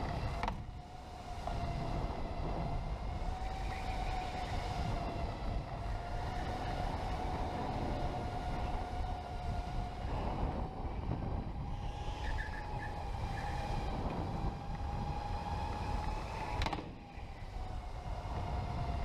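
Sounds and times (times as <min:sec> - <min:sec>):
electric motor whining: 0:00.0 - 0:19.0.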